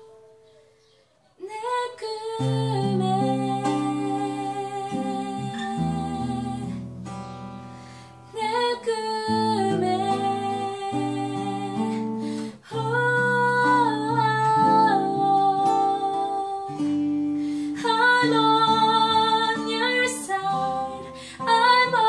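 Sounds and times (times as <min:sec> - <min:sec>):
acoustic guitar: 0:00.0 - 0:22.0
woman singing: 0:01.4 - 0:07.1, 0:08.3 - 0:22.0.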